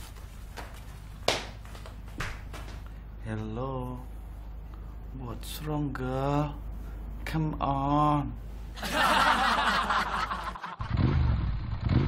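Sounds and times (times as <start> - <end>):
motorcycle engine revving: 10.8 - 12.0.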